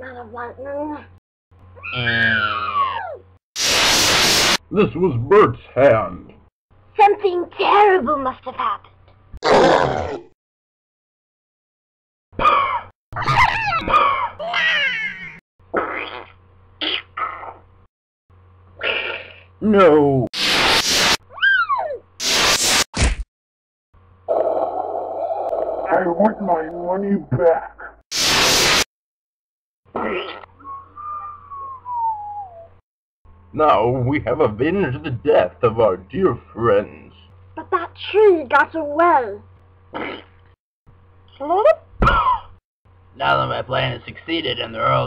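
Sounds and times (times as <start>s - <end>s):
person making monster growls: 9.4s - 10.3s, 24.3s - 25.9s.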